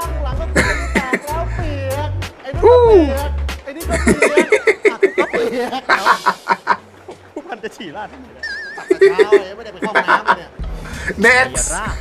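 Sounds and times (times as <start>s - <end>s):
man laughing hard: 0.6s - 1.4s, 3.9s - 7.2s, 8.4s - 10.4s.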